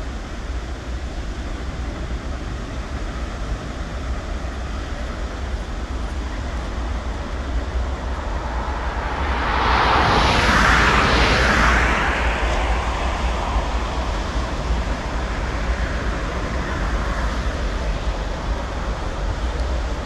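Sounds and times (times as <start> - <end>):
car passing by: 6.1 - 20.0.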